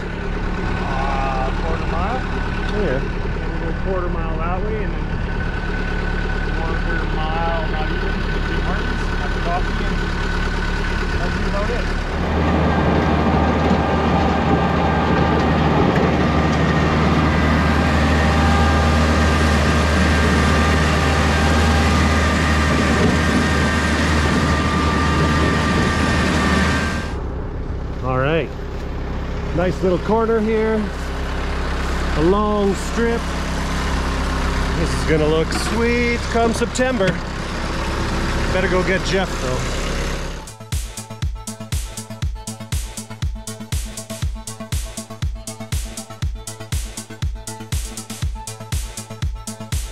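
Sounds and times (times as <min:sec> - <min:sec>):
farm vehicle engine running: 0:00.0 - 0:49.9
high whine: 0:11.2 - 0:33.4.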